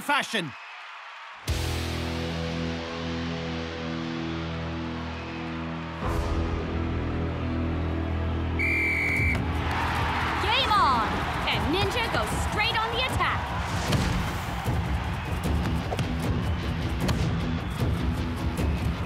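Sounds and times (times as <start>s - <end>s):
stadium crowd cheering: 0.0s - 19.0s
background music: 1.5s - 19.0s
referee's whistle blast: 8.6s - 9.4s.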